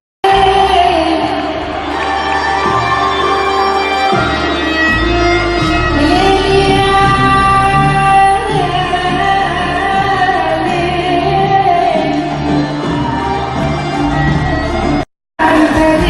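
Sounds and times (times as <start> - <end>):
live band playing pop: 0.2 - 16.0.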